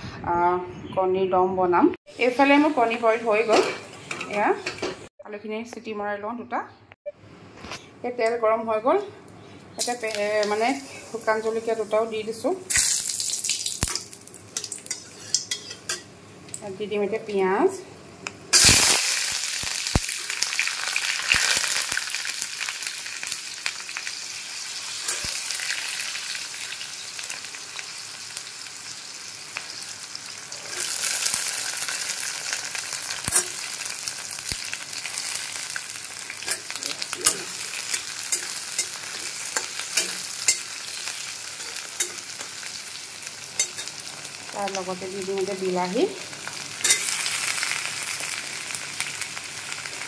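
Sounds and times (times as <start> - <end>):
onions sizzling in hot oil: 2.1 - 4.5, 9.8 - 16.7, 18.5 - 50.0
spatula scraping pan: 14.9 - 16.0.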